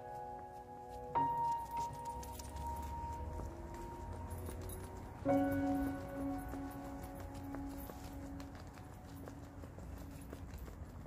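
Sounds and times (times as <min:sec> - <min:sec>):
dog paws tapping on grass: 0:00.0 - 0:11.0.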